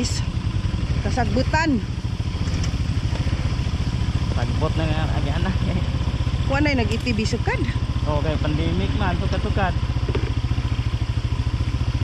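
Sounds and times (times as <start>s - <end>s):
engine puttering at low speed: 0.0s - 12.0s.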